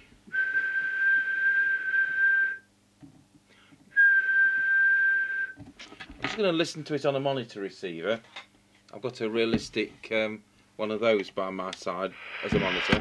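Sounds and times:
person whistling high note: 0:04.0 - 0:05.6.

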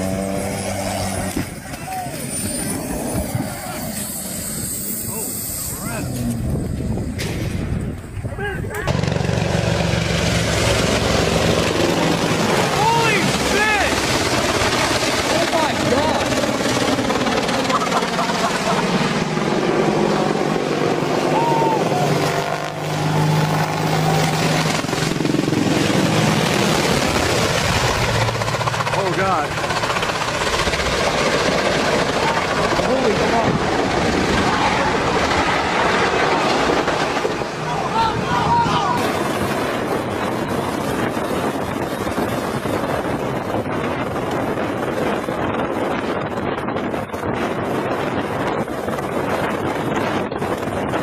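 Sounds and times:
helicopter flying overhead: 0:00.0 - 0:51.0
people's voices: 0:08.1 - 0:09.0, 0:37.6 - 0:39.0.

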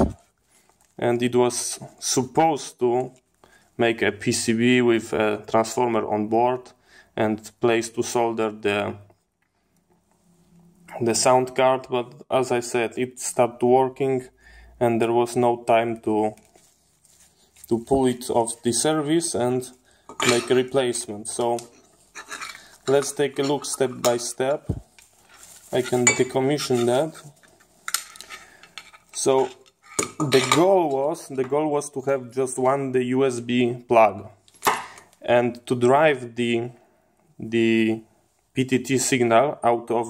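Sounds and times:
person talking: 0:00.0 - 0:00.2, 0:03.8 - 0:09.1, 0:10.9 - 0:16.5, 0:17.6 - 0:24.9, 0:25.6 - 0:27.4, 0:29.2 - 0:34.4
plastic wrapping crinkling: 0:16.1 - 0:18.7, 0:24.8 - 0:29.2.

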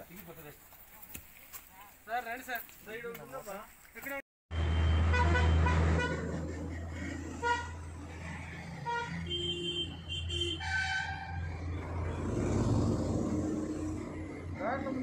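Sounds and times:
vehicle horns tooting: 0:04.5 - 0:06.3, 0:07.4 - 0:07.8, 0:08.8 - 0:11.4.

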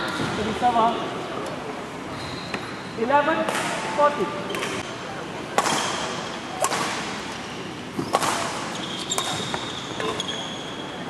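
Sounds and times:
racket striking shuttlecock: 0:05.6 - 0:07.2, 0:07.9 - 0:10.2.

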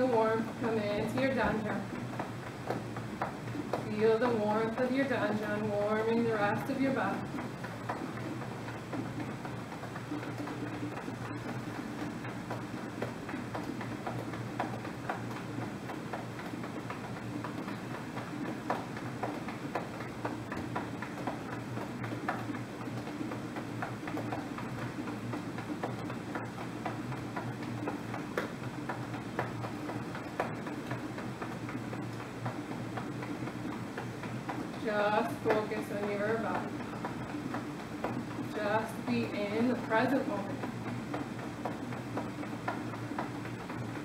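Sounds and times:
low steady hum: 0:00.0 - 0:44.0.

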